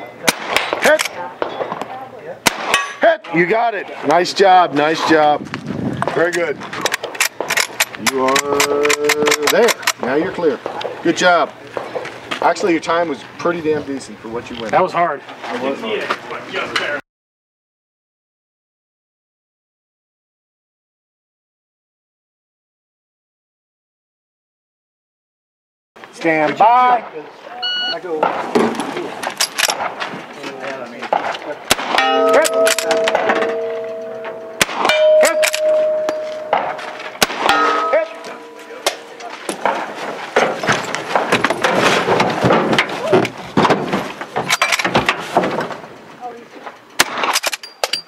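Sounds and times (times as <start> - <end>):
rifle shots: 0.2 - 1.8, 2.4 - 3.0, 31.7 - 33.8, 34.5 - 38.1
steel target ringing: 31.8 - 40.0
person speaking: 32.1 - 39.9.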